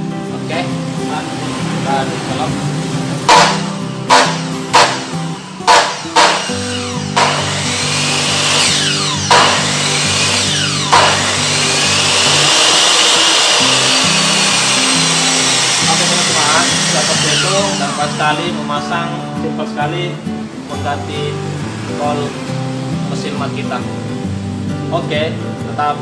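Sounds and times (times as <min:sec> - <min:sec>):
motor spinning down with whine: 0:03.3 - 0:18.8
miter saw motor running: 0:03.3 - 0:19.1.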